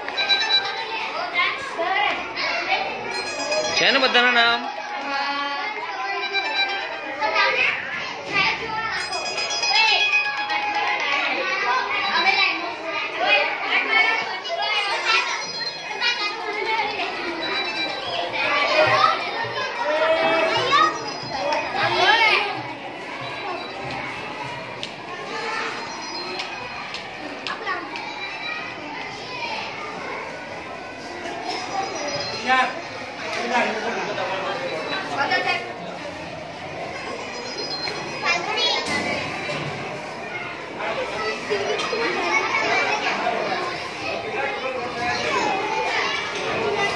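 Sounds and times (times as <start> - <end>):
children chattering: 0.0 - 46.9.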